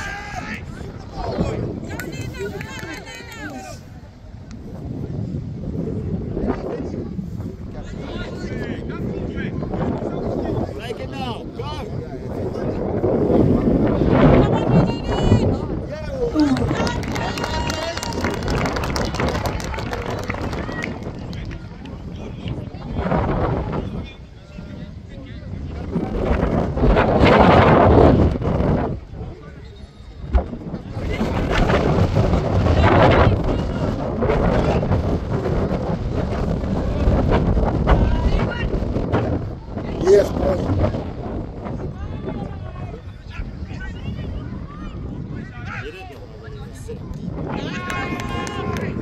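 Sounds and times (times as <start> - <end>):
wind rumble on microphone: 0.0 - 49.0.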